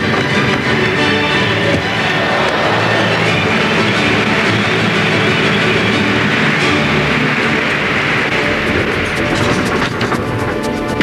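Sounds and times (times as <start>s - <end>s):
arena crowd cheering: 0.5s - 9.0s.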